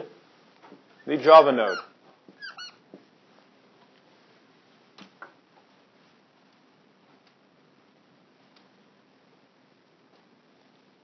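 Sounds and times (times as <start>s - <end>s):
marker squeaking on whiteboard: 1.0s - 2.9s.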